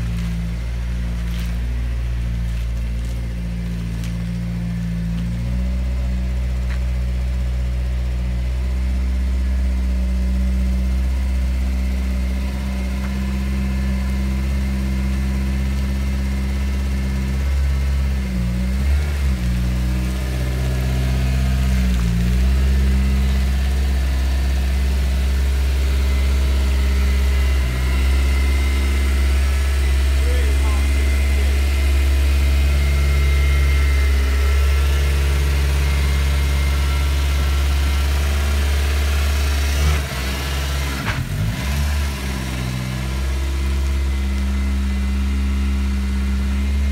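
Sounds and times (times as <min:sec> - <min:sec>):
car engine idling: 0:00.0 - 0:46.9.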